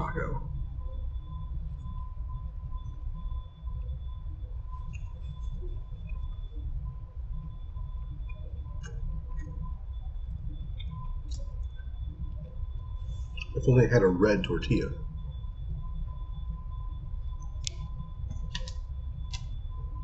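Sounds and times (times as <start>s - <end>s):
faint high whine: 0.0s - 20.0s
steady low rumble: 0.0s - 20.0s.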